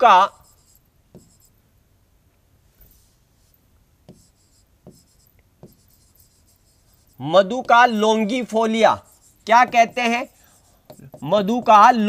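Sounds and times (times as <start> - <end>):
marker scratching on board: 0.0 - 1.6, 3.0 - 12.0
soft marker taps: 1.1 - 1.5, 4.0 - 6.8, 9.4 - 11.8.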